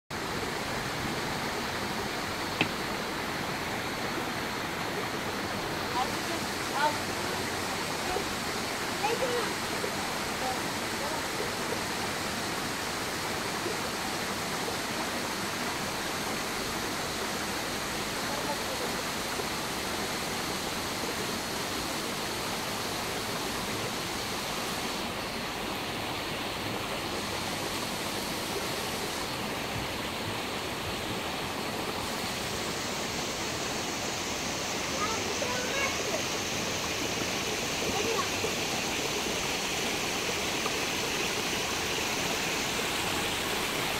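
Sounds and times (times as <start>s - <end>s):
river water rushing over rocks: 0.1s - 43.9s.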